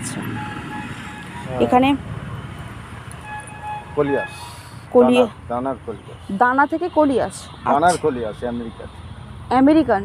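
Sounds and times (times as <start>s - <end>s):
road traffic rumble: 0.0s - 10.0s
vehicle horn toots: 3.2s - 4.7s.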